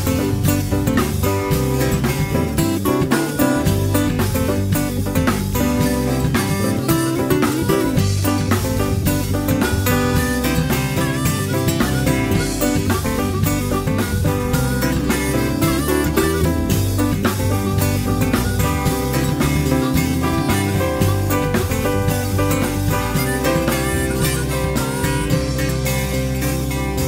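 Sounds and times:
drum kit beat: 0.0s - 27.0s
guitar: 0.0s - 27.0s.

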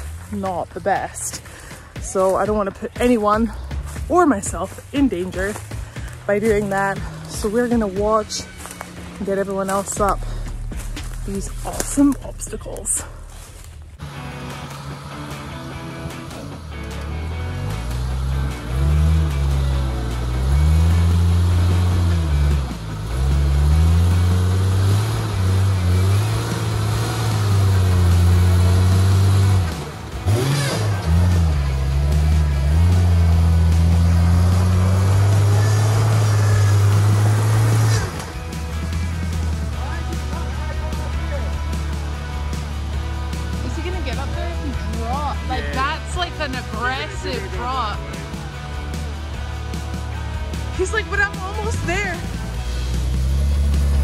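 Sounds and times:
rock buggy engine revving: 0.0s - 54.0s.

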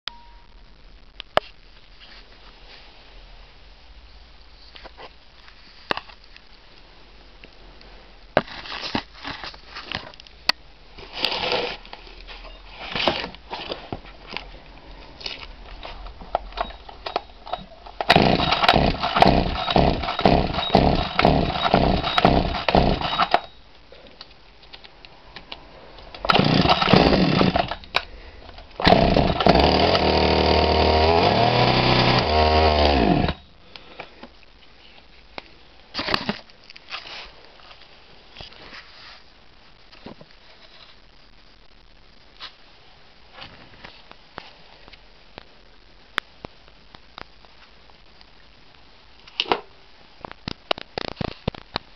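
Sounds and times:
chainsaw engine starting and running: 16.6s - 23.5s, 26.3s - 27.8s, 28.8s - 33.4s.

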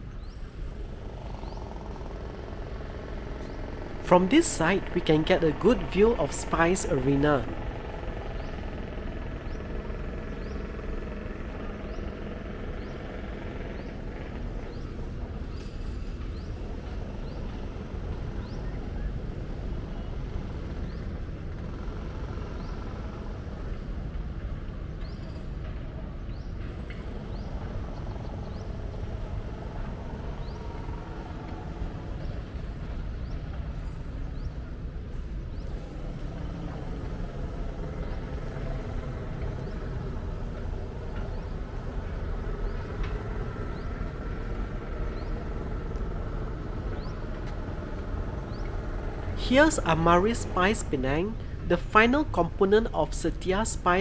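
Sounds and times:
outdoor background rumble: 0.0s - 54.0s
steady low rumble: 0.7s - 10.3s, 48.8s - 54.0s.

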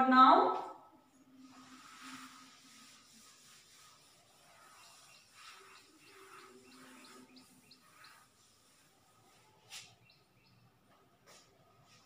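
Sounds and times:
small bird chirping: 4.3s - 10.7s.

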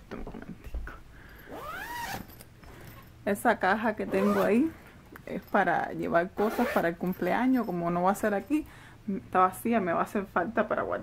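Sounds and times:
zipper being pulled shut: 1.5s - 2.4s, 4.1s - 4.7s, 6.4s - 6.8s.

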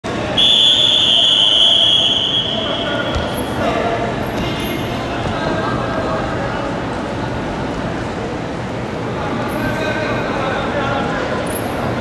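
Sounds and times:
high whistle-like signal tone: 0.4s - 3.1s.

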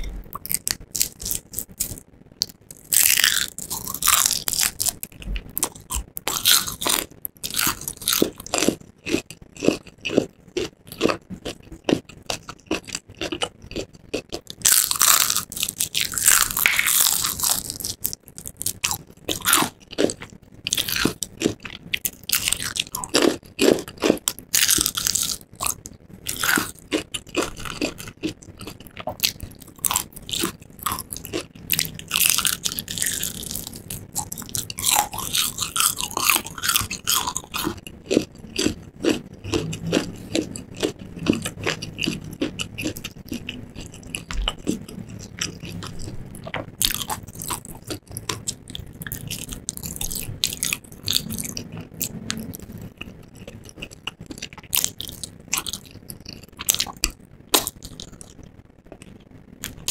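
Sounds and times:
crunching fried chicken: 0.0s - 59.9s.

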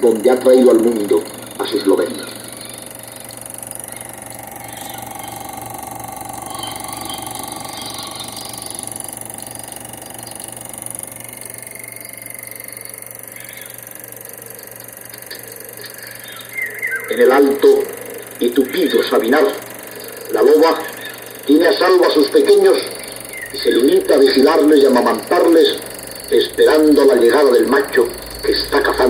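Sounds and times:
film projector running: 0.0s - 29.0s.

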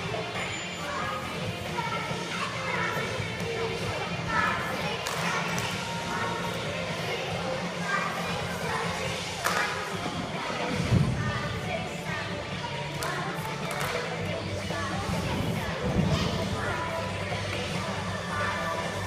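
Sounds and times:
faint background music: 0.0s - 19.0s
voices: 0.0s - 19.0s.

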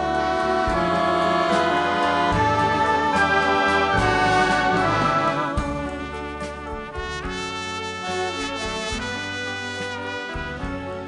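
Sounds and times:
woman singing wordless notes: 0.0s - 6.5s
concert band with brass: 0.0s - 11.0s.

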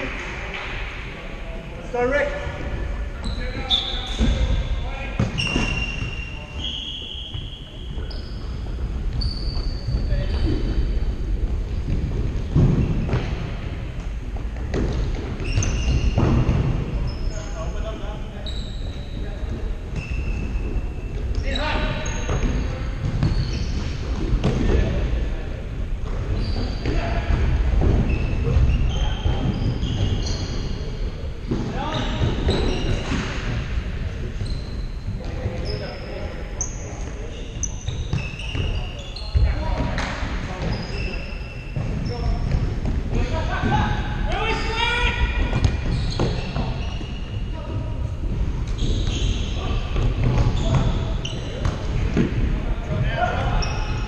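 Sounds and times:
sneakers squeaking on wooden floor: 1.9s - 24.6s, 26.0s - 54.0s.

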